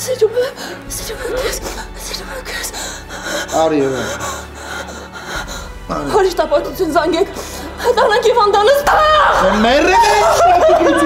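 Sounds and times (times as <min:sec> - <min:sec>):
woman sobbing and gasping: 0:00.1 - 0:11.0
woman crying out: 0:08.2 - 0:11.0.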